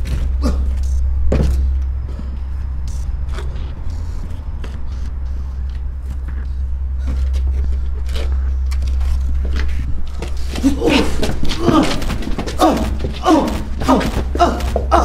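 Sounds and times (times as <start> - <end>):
short thuds and scuffs: 0.0 - 1.8, 7.0 - 15.0
deep drone: 0.0 - 15.0.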